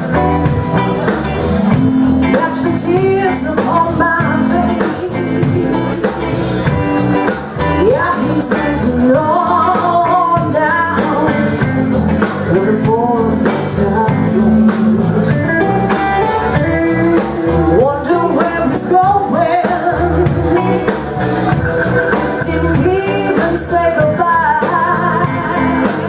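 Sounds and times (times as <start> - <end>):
live blues band playing: 0.0 - 26.0
woman singing: 2.2 - 6.7, 7.6 - 21.0, 22.2 - 26.0.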